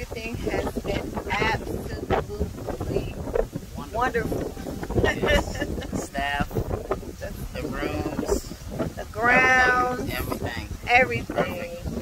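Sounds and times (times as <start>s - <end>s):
person speaking: 0.0s - 3.2s, 3.8s - 12.0s.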